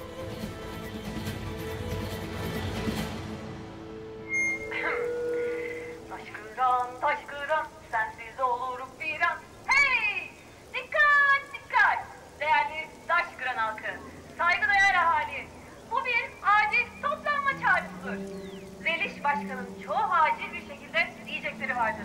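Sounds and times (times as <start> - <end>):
dramatic score music: 0.0 - 7.0.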